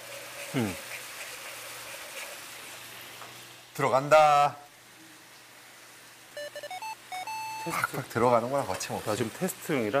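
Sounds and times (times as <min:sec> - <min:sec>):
sugar bubbling in a hot pan: 0:00.0 - 0:03.7.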